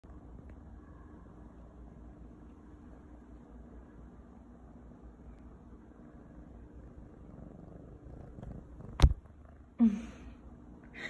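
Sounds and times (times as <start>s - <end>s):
kitten purring: 6.6s - 10.0s.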